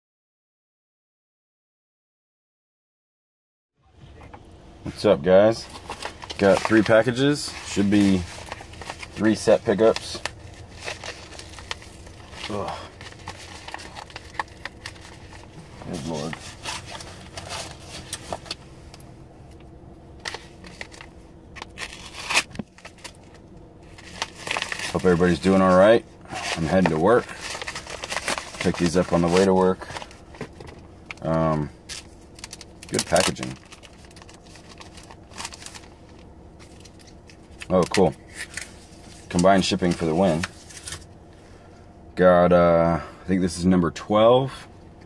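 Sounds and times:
low steady hum: 0:03.8 - 0:45.0
packaging rustling and crinkling: 0:05.5 - 0:18.7, 0:20.2 - 0:41.1.

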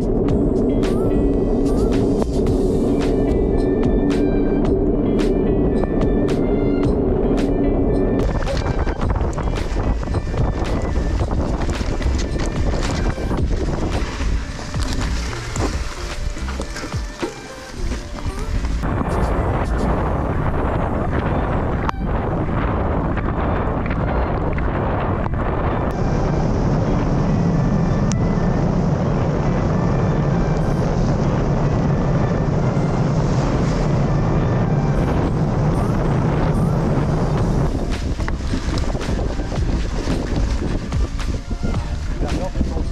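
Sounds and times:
bicycle road noise: 0:00.0 - 0:42.9
music: 0:00.0 - 0:42.9
rushing wind: 0:00.0 - 0:42.9.

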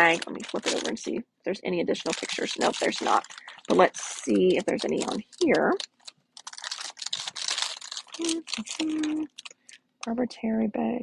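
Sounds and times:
plastic packaging crinkling: 0:00.0 - 0:01.2, 0:01.8 - 0:09.9.

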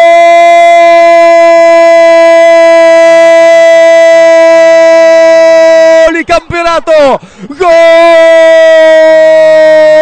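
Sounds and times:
commentator's drawn-out goal cry: 0:00.0 - 0:10.0.

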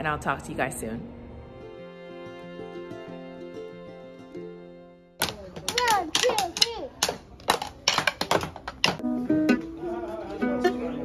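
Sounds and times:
drumsticks tapping electronic drum pads: 0:05.2 - 0:09.0.

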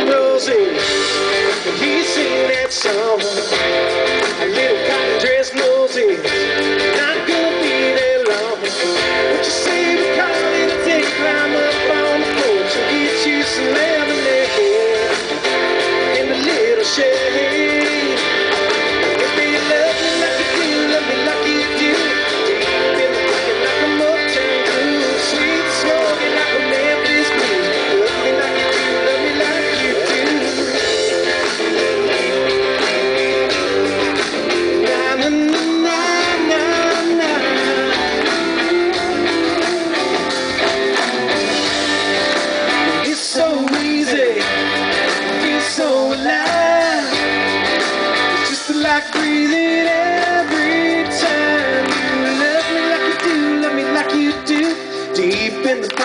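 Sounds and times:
live rock band playing: 0:00.0 - 0:56.0
strummed electric guitar: 0:00.0 - 0:56.0.

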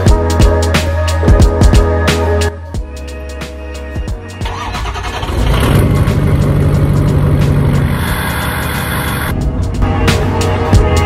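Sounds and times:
diesel engine cranking and running: 0:04.4 - 0:09.3.

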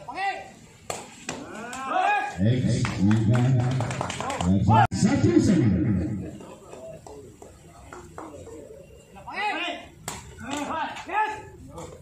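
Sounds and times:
players shouting calls: 0:01.3 - 0:03.3, 0:08.8 - 0:11.9.

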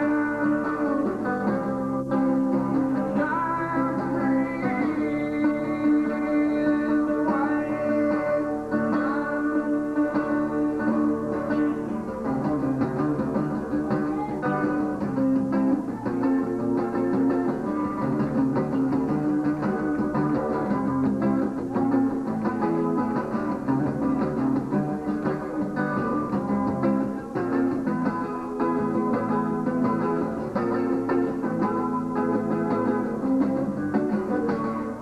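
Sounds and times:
acoustic guitar picking: 0:00.0 - 0:35.0.

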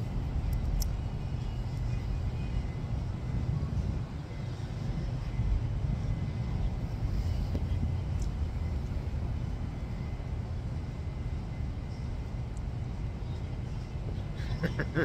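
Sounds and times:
wind on microphone: 0:00.0 - 0:14.4
distant traffic rumble: 0:00.0 - 0:15.0.

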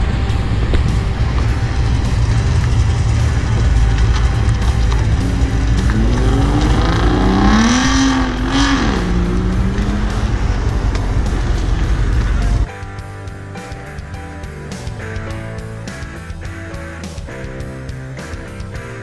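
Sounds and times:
car engine accelerating: 0:00.0 - 0:12.7
music: 0:00.0 - 0:19.0.

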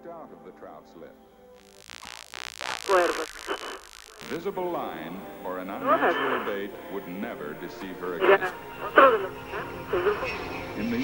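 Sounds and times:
videotape hiss: 0:01.6 - 0:11.0
man speaking: 0:04.2 - 0:08.5.

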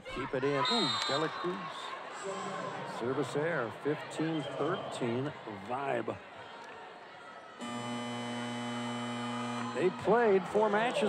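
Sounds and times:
arena background noise: 0:00.0 - 0:11.0
arena horn buzzing: 0:07.6 - 0:09.9.

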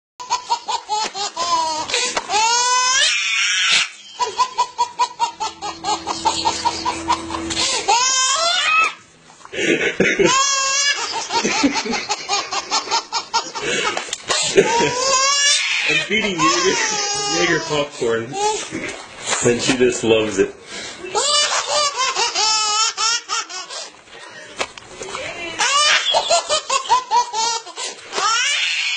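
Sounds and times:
person laughing hysterically: 0:03.8 - 0:08.9, 0:09.6 - 0:17.7, 0:25.6 - 0:27.8.

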